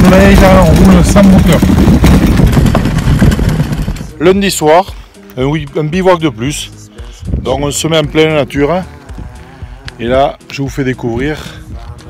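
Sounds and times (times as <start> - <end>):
tyres crunching over gravel: 0.0 - 12.0.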